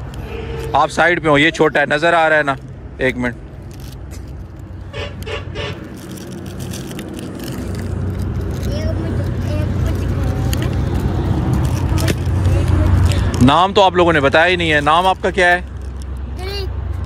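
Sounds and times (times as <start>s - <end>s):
vehicle engine humming: 0.0s - 17.0s.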